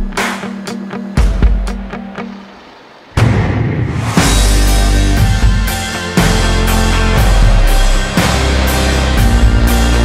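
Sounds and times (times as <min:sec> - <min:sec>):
background music beat: 0:00.0 - 0:02.4, 0:03.2 - 0:10.0
heavy hit: 0:03.2 - 0:09.6.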